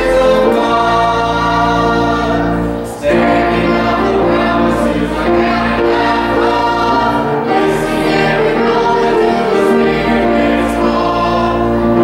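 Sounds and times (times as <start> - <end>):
congregation singing a hymn: 0.0 - 12.0
organ: 0.0 - 12.0.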